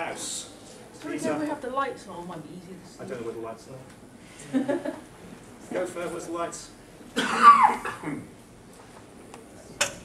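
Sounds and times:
person coughing hoarsely: 0:07.2 - 0:08.3.

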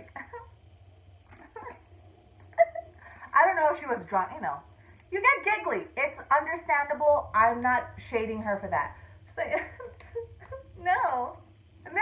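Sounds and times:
woman giggling: 0:00.0 - 0:00.6, 0:01.3 - 0:01.8, 0:02.5 - 0:03.3, 0:09.4 - 0:10.8.

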